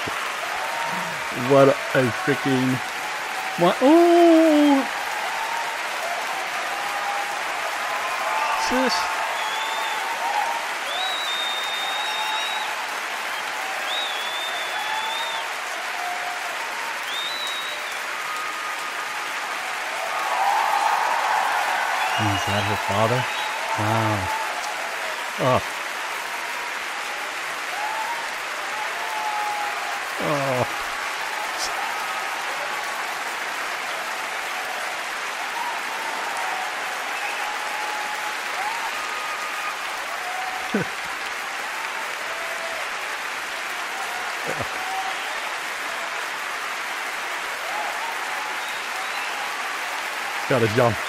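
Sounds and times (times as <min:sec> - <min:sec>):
audience applauding: 0:00.0 - 0:51.0
brief voices: 0:03.6 - 0:04.9, 0:22.1 - 0:24.4.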